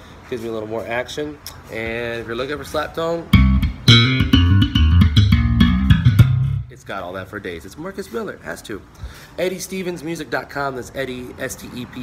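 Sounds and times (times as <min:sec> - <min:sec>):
slap bass electric guitar: 0:03.3 - 0:06.9.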